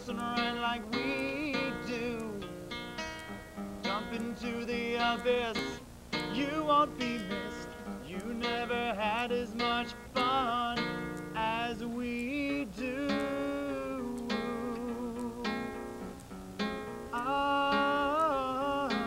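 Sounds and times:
man singing: 0.0s - 2.6s, 3.9s - 15.8s, 17.1s - 19.0s
acoustic guitar: 0.0s - 19.0s.

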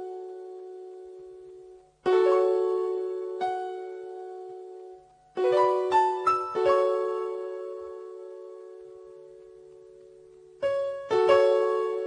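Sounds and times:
piano chord ringing: 0.0s - 12.0s.

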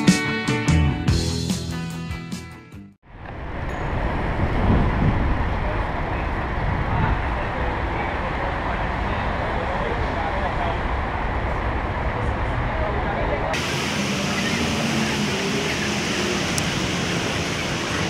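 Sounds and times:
city street traffic rumble: 3.0s - 18.0s.

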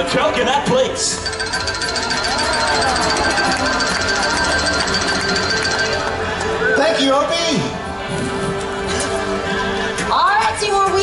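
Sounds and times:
show music with fast ticking beat: 1.2s - 6.5s.

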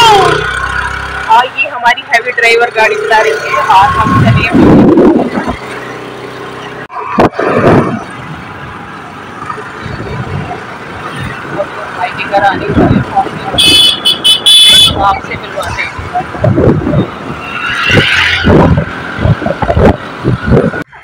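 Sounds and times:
road traffic: 0.0s - 21.0s
vehicle horn tooting: 13.5s - 15.0s.

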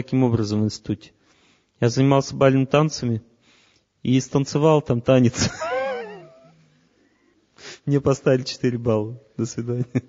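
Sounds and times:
man speaking: 7.8s - 10.0s.

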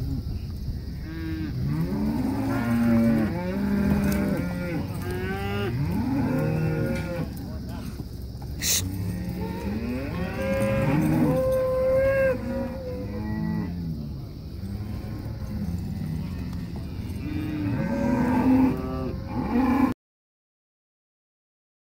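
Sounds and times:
cattle mooing: 1.0s - 7.4s, 8.6s - 20.0s.

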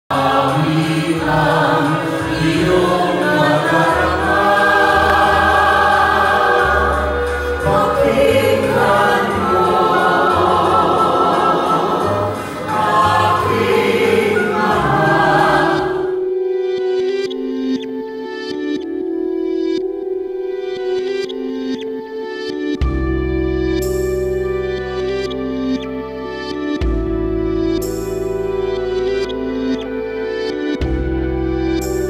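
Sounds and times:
group singing in harmony: 0.1s - 16.3s.

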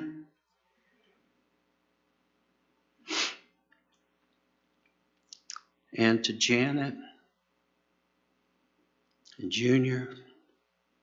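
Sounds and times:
breath burst into microphone: 3.0s - 3.5s.

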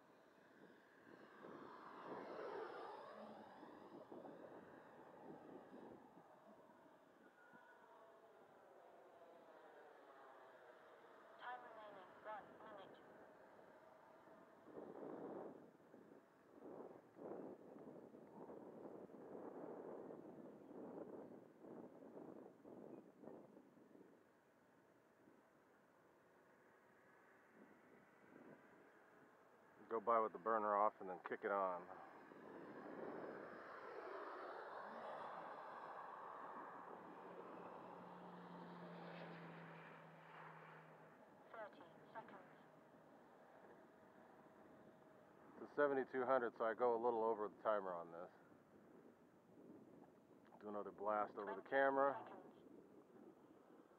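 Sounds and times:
distant rc jet rushing roar: 0.6s - 6.6s, 32.0s - 41.4s.

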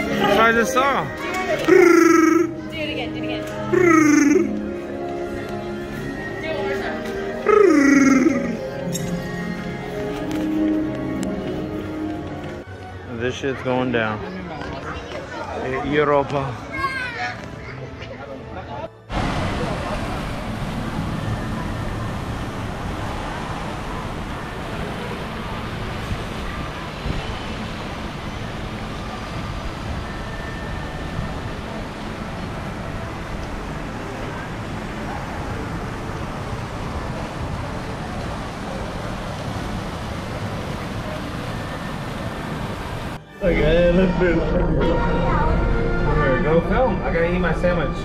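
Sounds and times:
fountain water splashing: 0.0s - 2.6s, 19.1s - 43.2s
murmur of voices: 0.0s - 48.0s.

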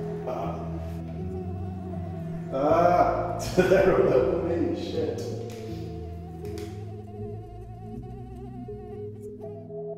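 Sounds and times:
mosquito whining: 0.0s - 9.9s.

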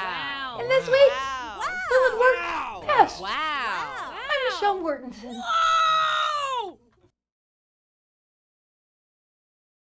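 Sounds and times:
person saying wow: 0.0s - 6.8s.

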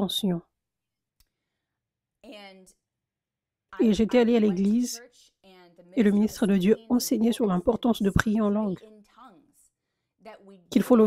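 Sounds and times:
woman speaking a syllable: 3.8s - 9.4s.

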